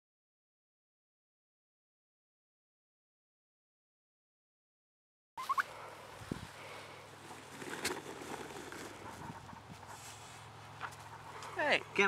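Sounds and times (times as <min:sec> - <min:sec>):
turkey calling: 0:05.4 - 0:05.9
outdoor background noise: 0:05.4 - 0:12.0.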